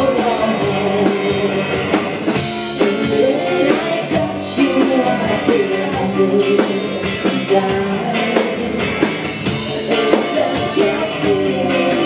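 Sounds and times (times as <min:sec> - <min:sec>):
woman singing: 0:00.0 - 0:02.1, 0:02.8 - 0:12.0
drum kit steady beat: 0:00.0 - 0:12.0
electric bass: 0:00.0 - 0:12.0
electric guitar: 0:00.0 - 0:12.0.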